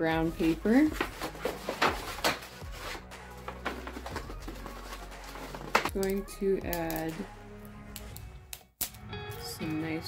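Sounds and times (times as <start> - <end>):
soft background music: 0.0 - 10.0
kraft paper crackling and rustling: 0.2 - 6.0.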